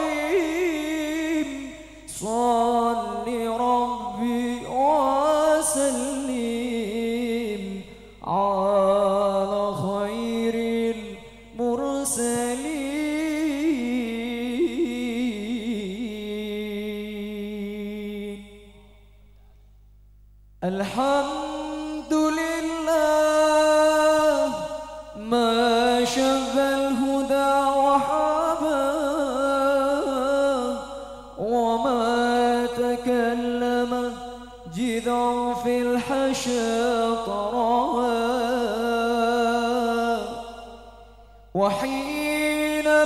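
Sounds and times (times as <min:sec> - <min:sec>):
man singing unaccompanied: 0:00.0 - 0:19.2, 0:20.6 - 0:43.0.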